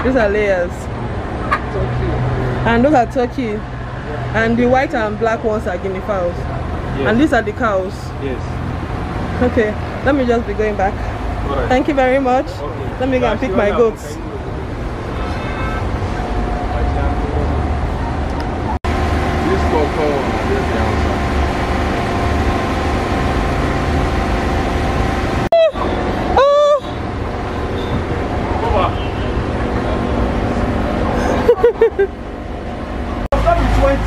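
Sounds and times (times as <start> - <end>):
steady background hum: 0.0 - 34.0.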